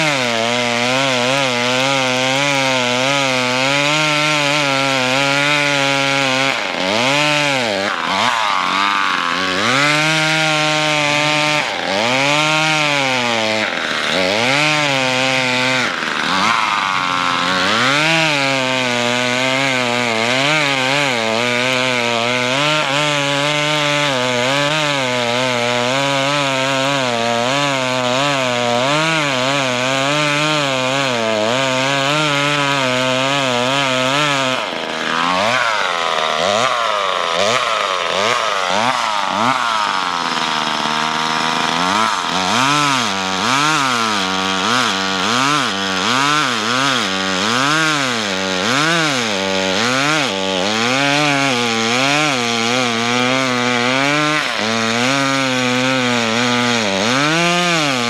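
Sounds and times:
chainsaw cutting through ice: 0.0s - 58.0s.

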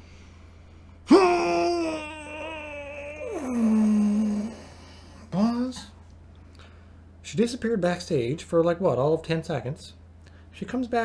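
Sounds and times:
man's drawn-out vocal cry: 1.0s - 5.8s.

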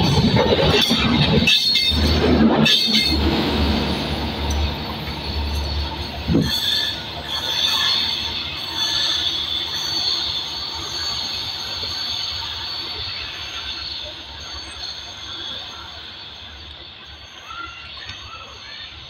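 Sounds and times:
train low rumble: 0.0s - 19.0s
train wheels squealing on rails: 0.0s - 19.0s.

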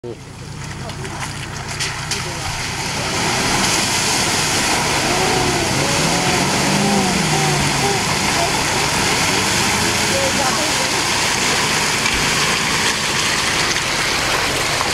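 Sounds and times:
vehicle engine working hard: 0.0s - 14.9s
muddy water surging and splashing: 0.1s - 14.9s.

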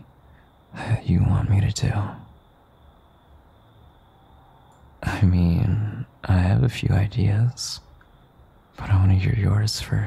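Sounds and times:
microphone hiss: 0.0s - 10.0s
man speaking softly: 0.7s - 2.3s, 5.0s - 7.9s, 8.8s - 10.0s.

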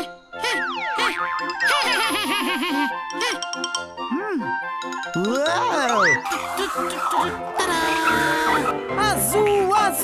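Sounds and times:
cheerful children's music: 0.0s - 10.0s
cartoon boing sound effects: 0.4s - 2.0s.

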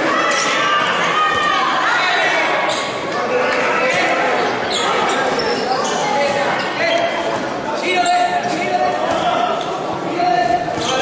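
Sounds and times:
players shouting: 0.0s - 6.2s.

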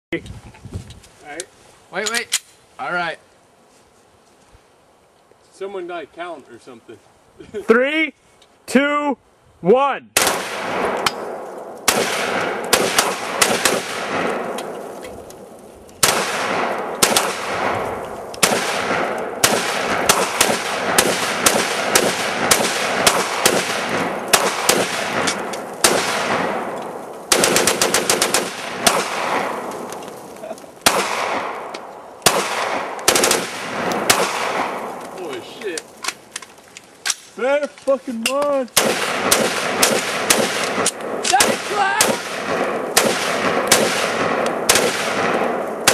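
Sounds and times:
rifles and pistols firing: 10.2s - 14.8s, 15.4s - 30.1s, 30.8s - 35.1s, 38.3s - 45.9s.

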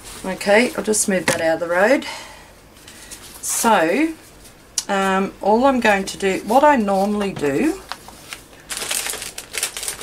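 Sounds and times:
paper rustling: 6.8s - 10.0s.

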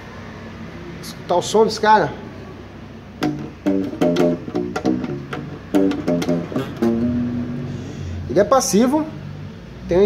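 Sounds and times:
plucked acoustic bass notes: 3.2s - 8.2s.

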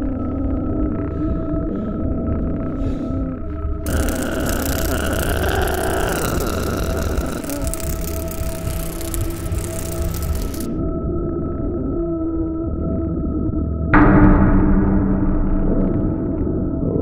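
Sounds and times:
eerie held tones: 0.0s - 11.9s, 14.0s - 17.0s
low rumbling drones: 0.0s - 17.0s.

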